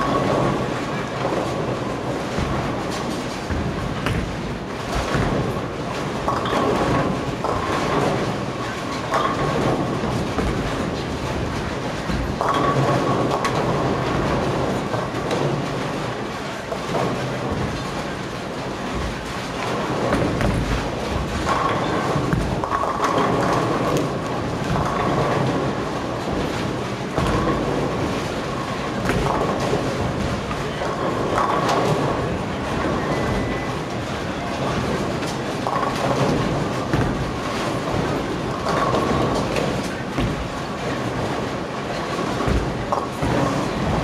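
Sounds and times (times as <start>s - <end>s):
bowling balls rolling: 0.0s - 44.0s
bowling pins crashing: 0.0s - 44.0s.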